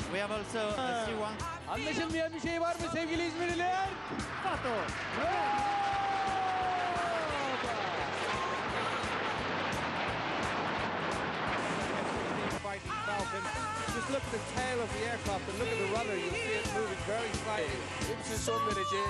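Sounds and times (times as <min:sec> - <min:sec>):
man talking: 0:00.0 - 0:04.8, 0:12.6 - 0:19.0
jets passing overhead: 0:07.5 - 0:12.9.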